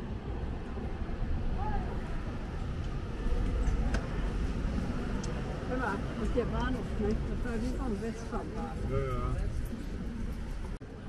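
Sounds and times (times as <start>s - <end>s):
low street rumble: 0.0s - 11.0s.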